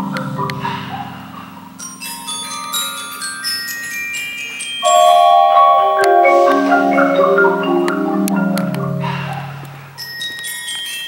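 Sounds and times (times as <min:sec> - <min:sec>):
low mallet percussion notes: 0:00.0 - 0:11.0
bell-like metal percussion: 0:01.8 - 0:11.0.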